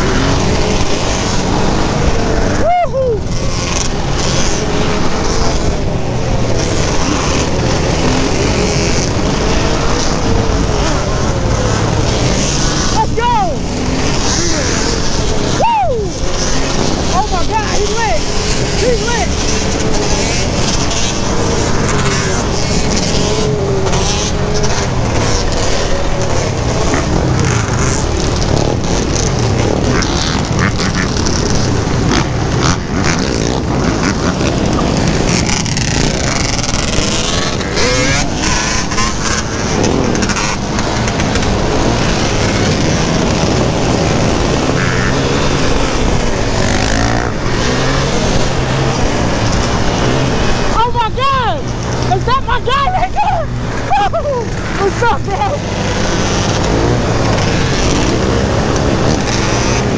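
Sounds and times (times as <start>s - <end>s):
quad bike engine revving: 0.0s - 59.9s
wind noise on microphone: 14.9s - 59.9s.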